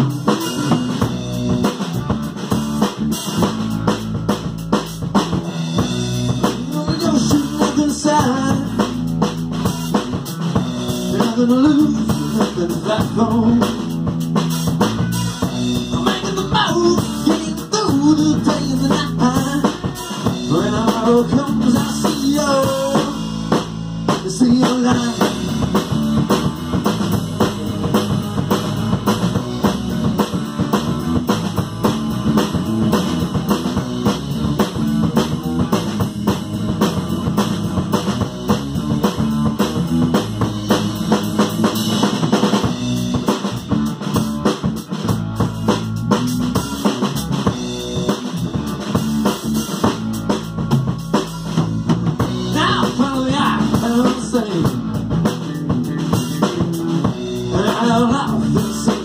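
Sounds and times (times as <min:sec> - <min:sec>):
drum kit beat: 0:00.0 - 0:59.0
electric guitar: 0:00.0 - 0:59.0.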